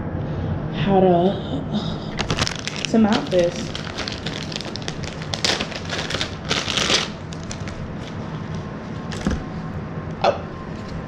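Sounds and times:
straps rustling: 2.2s - 9.4s.

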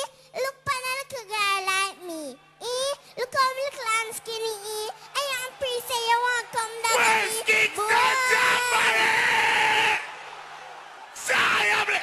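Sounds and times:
crowd noise: 1.2s - 12.0s
high held cry: 5.1s - 10.2s, 11.2s - 12.0s.

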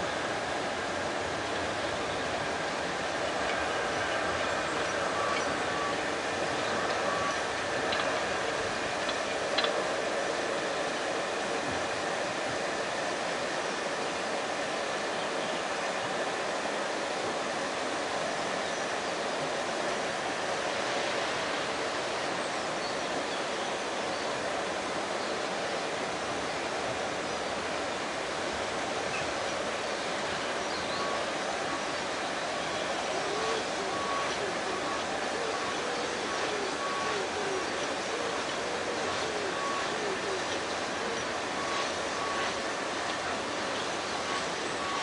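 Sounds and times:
fast stream rushing: 0.0s - 45.0s
steam hissing from locomotive: 0.0s - 45.0s.

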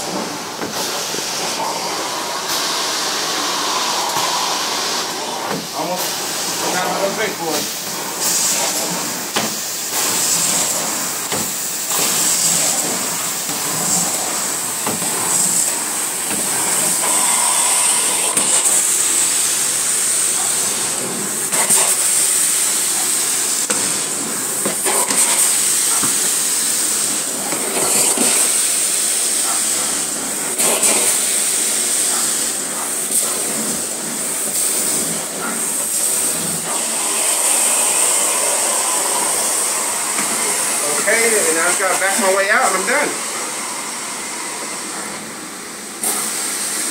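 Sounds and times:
carpet cleaning wand suction: 0.0s - 46.9s.

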